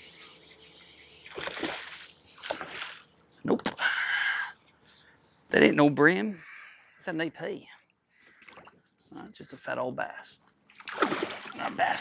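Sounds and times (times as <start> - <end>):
fish splashing at water surface: 0.0 - 3.2, 10.7 - 12.0.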